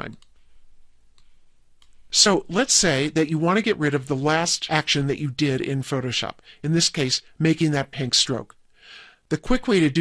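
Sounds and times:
faint mouse clicks: 0.0s - 0.4s, 1.1s - 2.0s.

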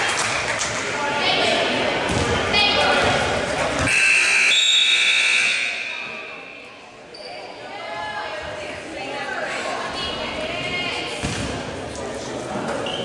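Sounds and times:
crowd voices: 0.0s - 13.0s
scoreboard buzzer: 3.9s - 6.1s.

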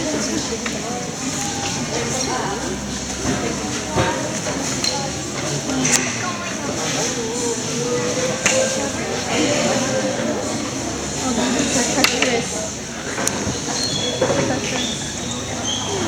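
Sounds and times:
chatter of many people: 0.0s - 16.0s.

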